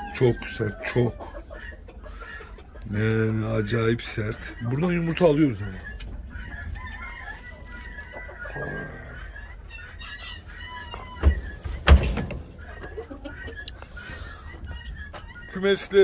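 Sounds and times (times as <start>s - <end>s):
hens clucking: 0.0s - 16.0s
rooster crowing: 6.6s - 11.5s.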